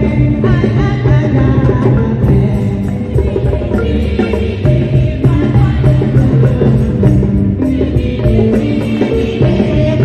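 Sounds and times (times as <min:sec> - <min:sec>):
amplified accompaniment with bass: 0:00.0 - 0:10.0
choir singing: 0:00.0 - 0:10.0
woman singing into a microphone: 0:00.0 - 0:10.0.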